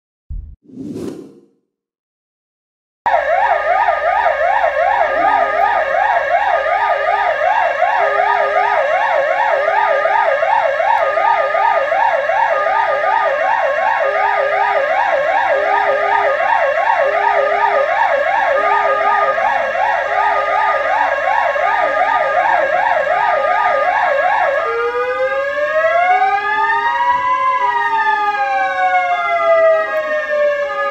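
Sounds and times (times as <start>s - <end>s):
low pulsing tone: 0.3s - 0.6s
ambulance sirens yelping: 3.1s - 30.9s
slow wailing siren: 3.1s - 30.9s.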